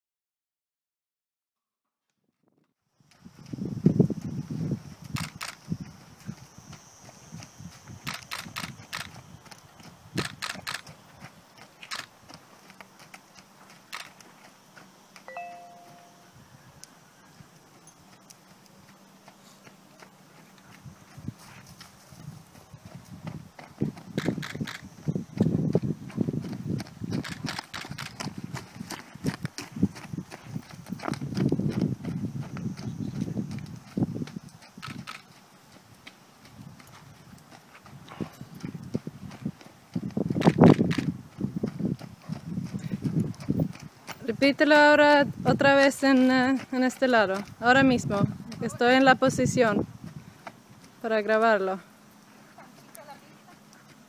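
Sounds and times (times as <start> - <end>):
horse hoofbeats on sand: 3.1 - 16.3, 17.1 - 54.0.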